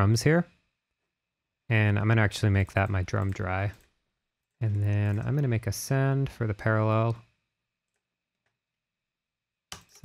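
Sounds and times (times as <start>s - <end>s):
man's voice: 1.7s - 3.8s, 4.6s - 7.2s.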